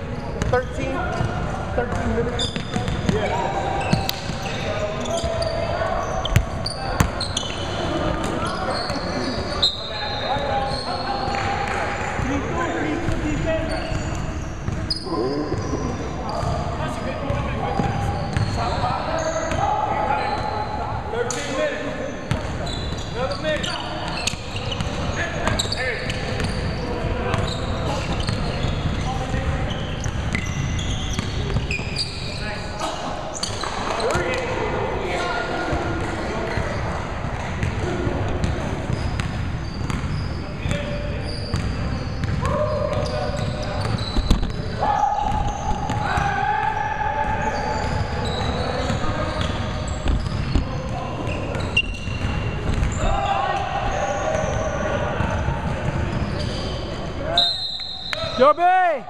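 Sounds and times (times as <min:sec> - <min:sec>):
indistinct voices: 0:14.9 - 0:17.0.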